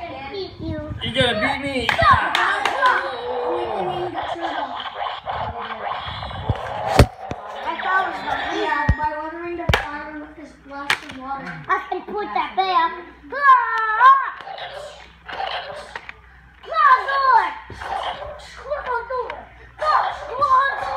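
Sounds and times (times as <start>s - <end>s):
plastic toy swords clacking: 1.9s - 3.0s, 10.9s - 11.2s
child chattering: 2.0s - 10.6s, 11.4s - 20.9s.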